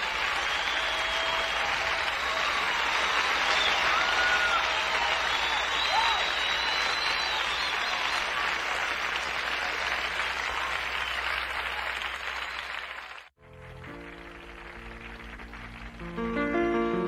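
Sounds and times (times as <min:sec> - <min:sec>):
audience applauding: 0:00.0 - 0:16.5
whistles: 0:00.4 - 0:08.3, 0:10.9 - 0:11.5.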